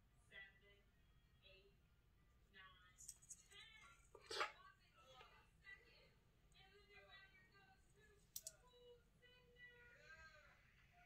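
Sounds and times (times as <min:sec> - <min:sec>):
faint background speech: 0:00.1 - 0:11.0
necklace chain clicks: 0:08.3 - 0:08.6.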